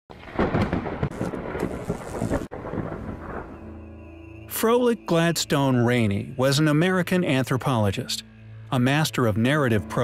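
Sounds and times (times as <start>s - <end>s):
rain: 0.1s - 3.7s
rumbling crackling thunder: 0.1s - 3.9s.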